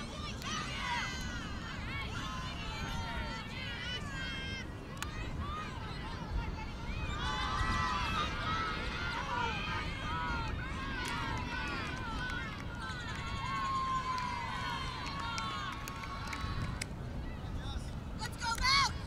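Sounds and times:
players calling and shouting: 0.0s - 19.0s.

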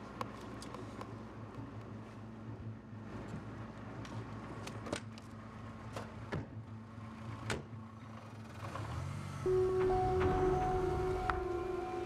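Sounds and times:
low vehicle rumble: 0.0s - 12.0s
dramatic score music low note: 9.3s - 12.0s.

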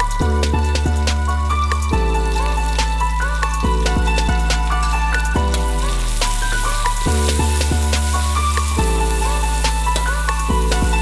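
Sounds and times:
background music: 0.0s - 11.0s
garlic sizzling in hot oil: 0.0s - 11.0s.

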